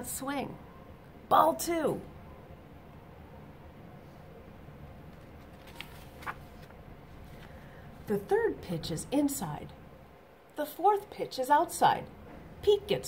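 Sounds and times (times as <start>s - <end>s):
paper page turning: 5.1s - 7.6s.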